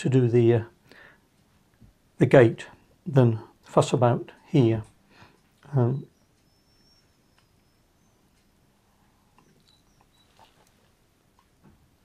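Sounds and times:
faint high chirps: 5.7s - 10.8s.

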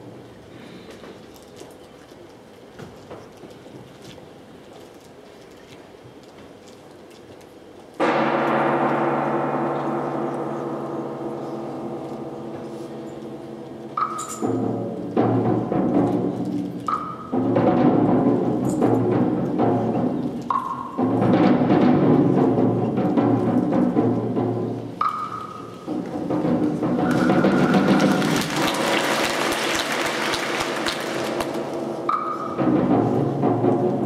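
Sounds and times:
chamber ensemble playing: 8.0s - 20.2s.

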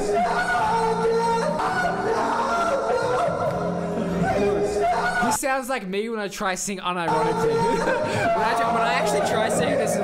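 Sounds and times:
backing track music: 0.0s - 5.4s, 7.0s - 10.0s.

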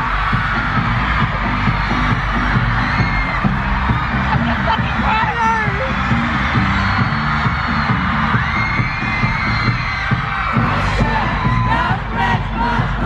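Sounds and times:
crowd cheering and singing: 0.0s - 13.0s
heavy repeating bass line: 0.0s - 13.0s
live pop music with singing: 0.0s - 13.0s.

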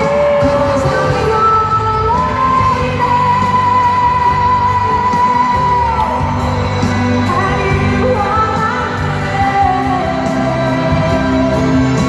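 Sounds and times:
full band playing: 0.0s - 12.0s
woman singing a pop ballad: 0.0s - 12.0s.

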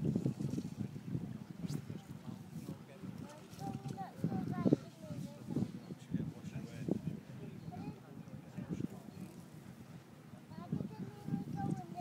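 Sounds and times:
faint indistinct voices: 0.2s - 12.0s.

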